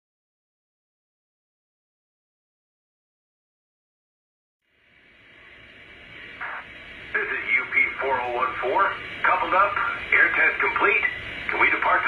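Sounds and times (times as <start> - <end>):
radio static hiss: 4.7 - 12.0.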